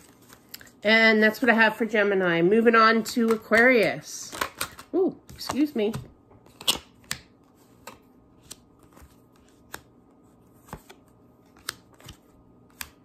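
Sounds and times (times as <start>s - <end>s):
cards clicking and snapping: 4.3s - 9.9s, 10.6s - 13.0s.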